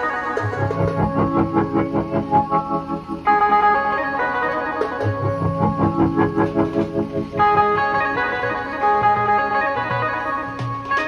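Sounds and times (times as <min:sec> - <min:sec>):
electronic keyboard organ melody: 0:00.0 - 0:11.0
steady beat: 0:00.0 - 0:11.0.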